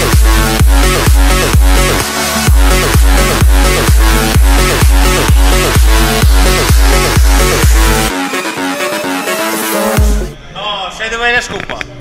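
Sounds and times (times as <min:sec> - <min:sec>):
electronic dance music: 0:00.0 - 0:10.4.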